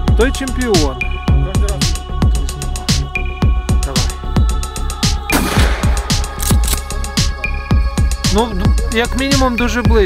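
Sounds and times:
deep bass drum hits: 0:05.3 - 0:06.4
shotgun shot: 0:05.3 - 0:06.8.

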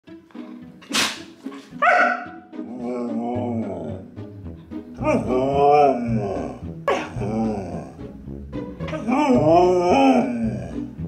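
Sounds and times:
dog barking: 0:01.7 - 0:02.5
dog howling: 0:01.8 - 0:04.1, 0:05.0 - 0:08.1, 0:08.9 - 0:11.0.

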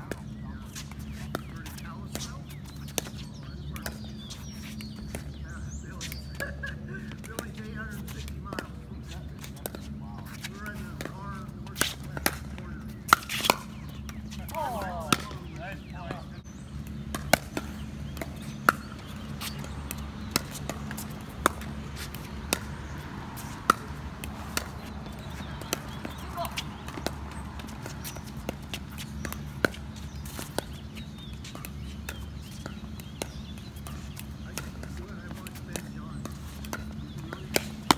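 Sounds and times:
paddles striking pickleball: 0:00.0 - 0:37.9
ball bouncing on hard court: 0:16.9 - 0:37.9.

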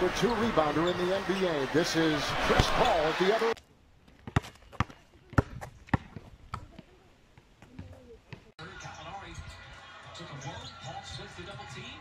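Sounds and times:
arena crowd noise: 0:00.0 - 0:03.6, 0:08.5 - 0:12.0
basketball bouncing on asphalt: 0:04.1 - 0:08.5.

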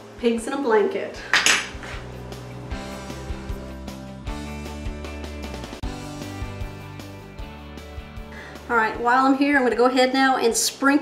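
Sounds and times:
background music with steady beat: 0:01.4 - 0:10.0.

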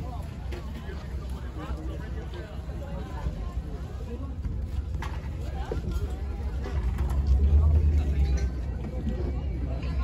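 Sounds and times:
faint chatter of people: 0:00.0 - 0:10.0.

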